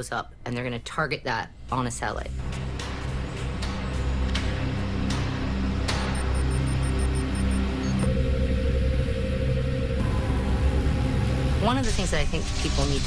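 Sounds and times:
dark droning background music: 2.3s - 13.0s
high electronic beeps: 6.0s - 8.2s.

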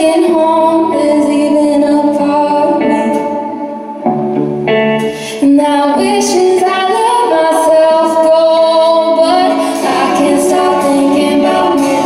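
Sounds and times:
guitar and band accompaniment: 0.0s - 12.0s.

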